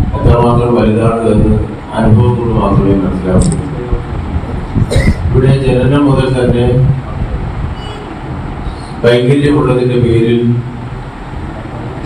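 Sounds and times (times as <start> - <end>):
low rumbling with hiss: 0.0 - 12.0.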